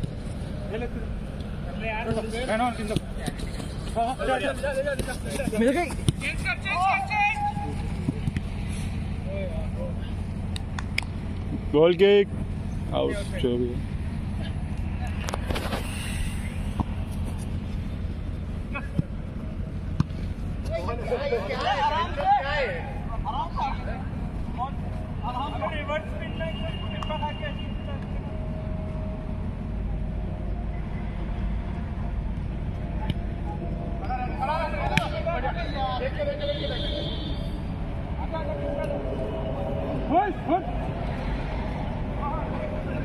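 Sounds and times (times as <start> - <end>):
distant players shouting: 2.8 - 8.7, 33.0 - 43.0.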